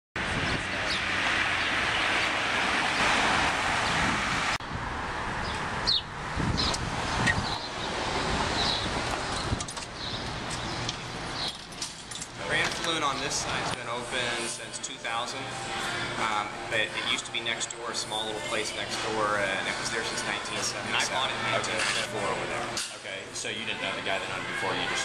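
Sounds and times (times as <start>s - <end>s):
quiet street ambience: 0.2s - 25.0s
road traffic noise: 0.2s - 25.0s.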